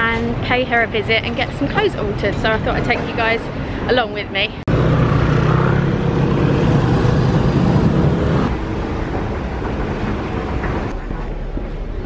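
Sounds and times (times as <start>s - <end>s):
road traffic: 0.0s - 12.0s
heavy vehicle engine rumble: 4.6s - 12.0s.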